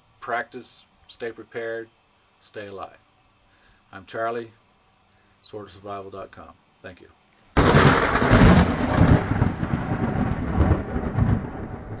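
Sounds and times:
crack and low rumble: 7.6 - 12.0.

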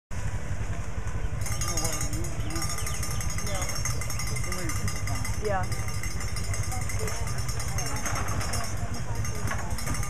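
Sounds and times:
distant voices: 0.2 - 10.0.

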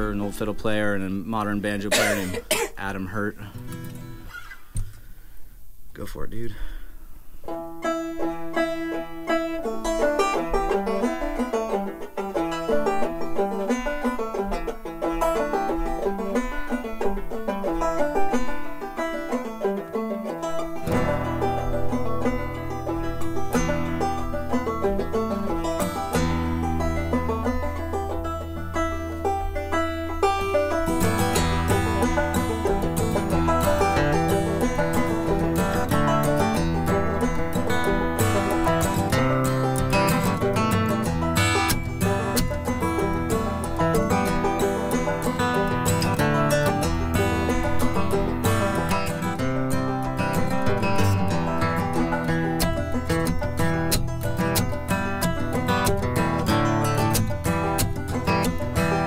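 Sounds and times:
banjo melody: 0.0 - 4.4, 7.4 - 59.0
acoustic guitar bass notes: 0.0 - 5.3, 7.4 - 59.0.

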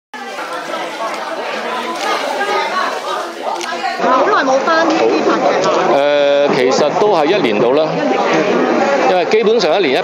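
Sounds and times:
overlapping indistinct chatter: 0.2 - 10.0.

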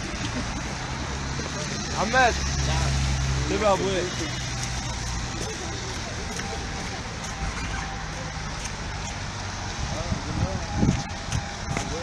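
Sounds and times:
street traffic: 0.0 - 12.0
vehicle engine hum: 0.0 - 12.0.

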